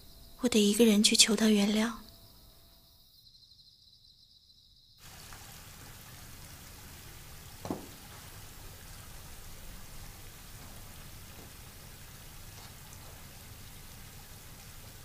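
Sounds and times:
rain falling: 5.0 - 15.0
short thump: 7.6 - 8.0.

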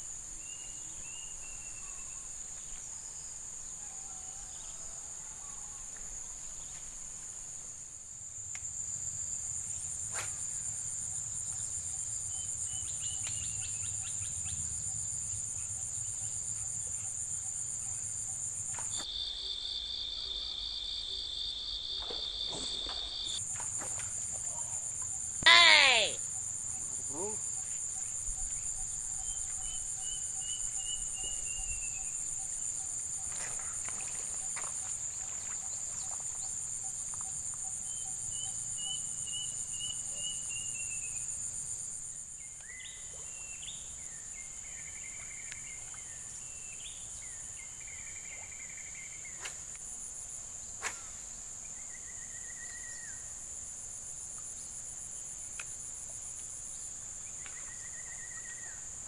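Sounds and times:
high-pitched pulsing insect chorus: 0.0 - 59.0
lower pulsing insect tone: 0.0 - 59.0.

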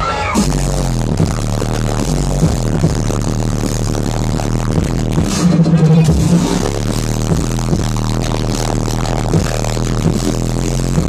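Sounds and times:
loud dubstep over sound system: 0.0 - 11.0.

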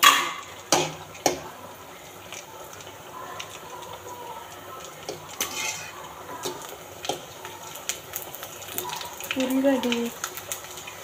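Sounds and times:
oil frying sizzle: 0.0 - 11.0
metal fork scraping a metal pan: 5.4 - 6.0.

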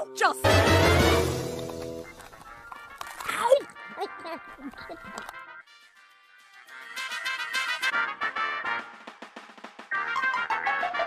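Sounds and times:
faint background music: 0.0 - 8.8
stifled giggles: 3.9 - 5.3.

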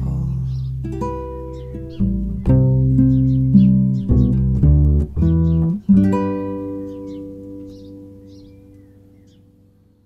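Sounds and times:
faint bird chirps: 0.0 - 4.4, 5.2 - 10.0
acoustic guitar and double bass chord: 0.0 - 10.0.

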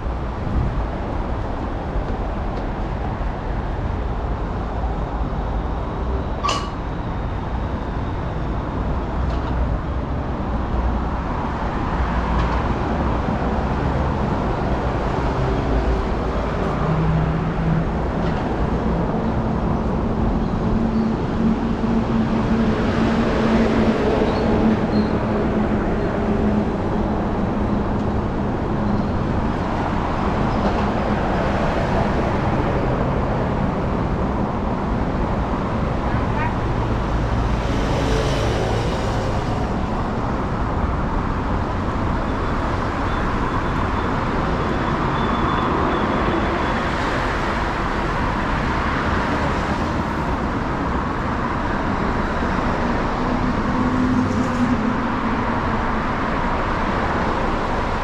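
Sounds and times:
passing cars: 0.0 - 58.0.

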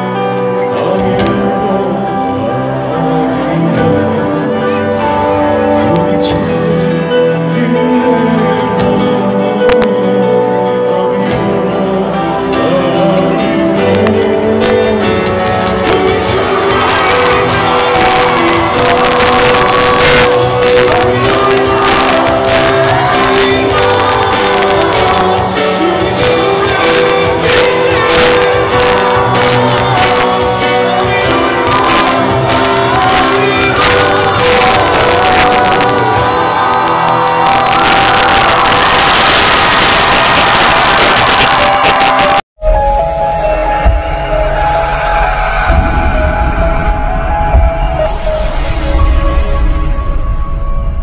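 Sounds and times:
person singing: 0.0 - 49.8
crowd shouting and singing along: 0.0 - 50.4
live band music: 0.0 - 51.0.

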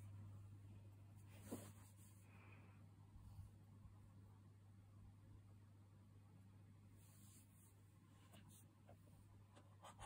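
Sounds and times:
low steady hum: 0.0 - 10.0
faint scratchy rustles: 1.2 - 2.4, 7.0 - 8.8.

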